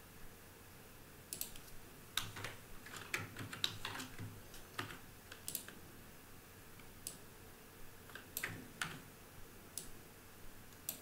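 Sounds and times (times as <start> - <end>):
computer keyboard clicks: 1.3 - 5.8, 8.1 - 9.0.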